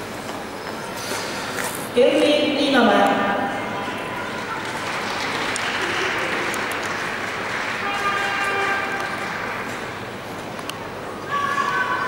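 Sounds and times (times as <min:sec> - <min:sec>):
audience applauding: 0:04.2 - 0:10.2.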